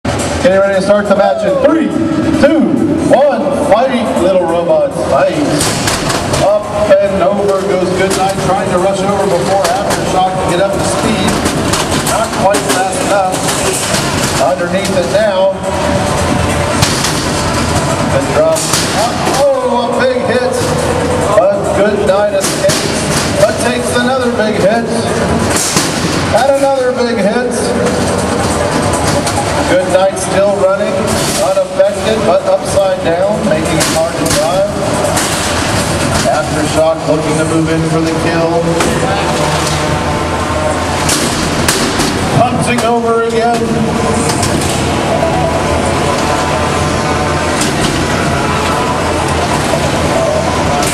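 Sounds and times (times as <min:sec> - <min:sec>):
noisy arena background: 0:00.0 - 0:50.9.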